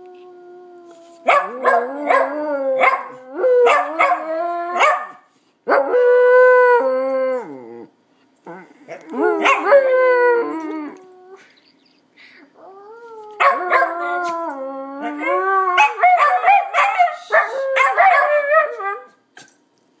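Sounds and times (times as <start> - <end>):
dogs howling: 1.2 - 5.0, 8.9 - 11.4, 12.7 - 19.1.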